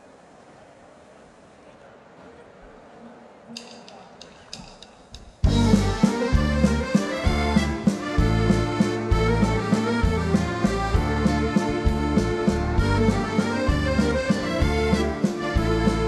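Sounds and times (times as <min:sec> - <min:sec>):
quiet crowd noise: 0:00.0 - 0:16.0
live band playing waltz: 0:05.4 - 0:16.0.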